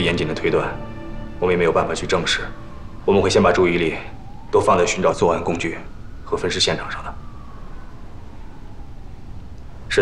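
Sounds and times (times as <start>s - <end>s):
distant siren wailing: 0.0s - 10.0s.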